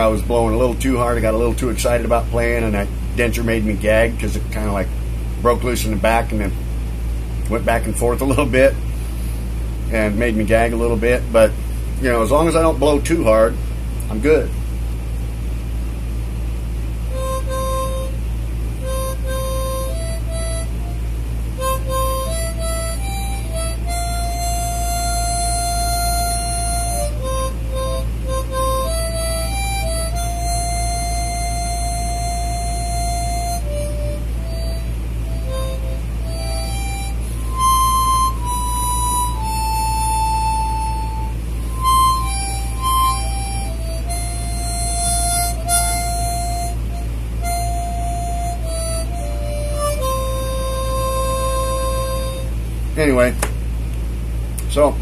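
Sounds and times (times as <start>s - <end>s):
harmonica melody: 0.0s - 4.7s, 17.0s - 53.3s
steady low hum: 0.0s - 55.0s.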